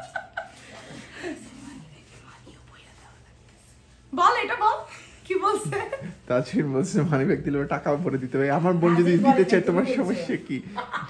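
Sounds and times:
women laughing: 0.0 - 1.6, 9.0 - 11.0.

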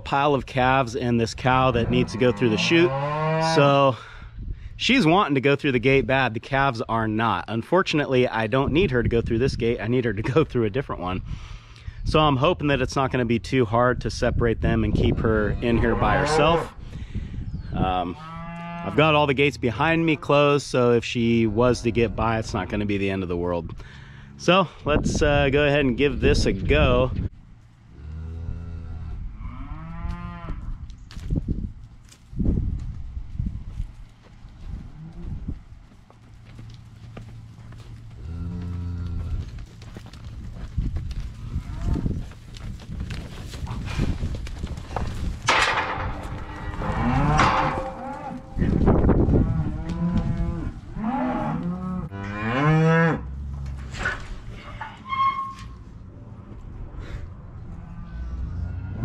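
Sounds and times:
cows and calves mooing: 1.5 - 3.8, 15.2 - 16.8, 18.0 - 20.4, 27.9 - 30.7, 38.2 - 39.5, 45.5 - 53.8, 57.7 - 59.0.

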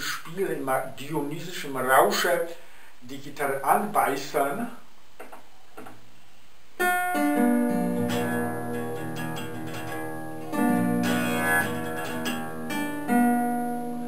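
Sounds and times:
acoustic guitar plucked: 6.8 - 14.0.

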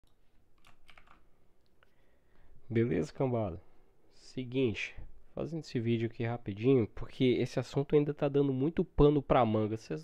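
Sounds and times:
faint computer keyboard clicks: 0.0 - 1.8.

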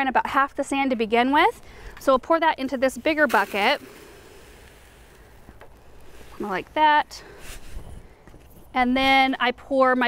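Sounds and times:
sand pouring into plastic bucket: 2.9 - 7.8.

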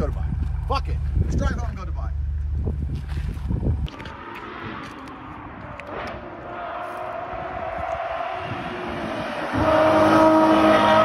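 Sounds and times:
car engine running hard: 0.0 - 11.0.

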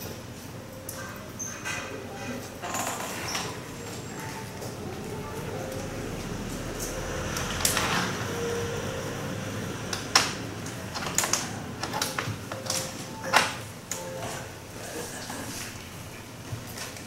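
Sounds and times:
steady room hum: 0.0 - 17.0.

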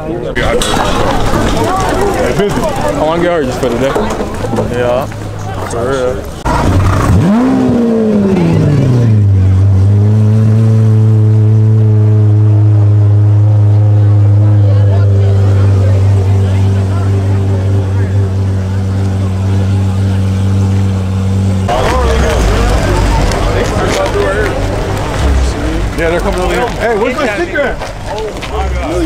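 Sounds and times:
car engine revving: 0.4 - 29.0
loud engine idle: 12.1 - 29.0.

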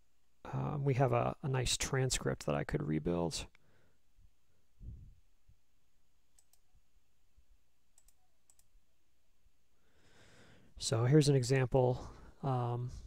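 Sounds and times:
computer mouse clicks: 6.3 - 6.7, 8.0 - 8.7.

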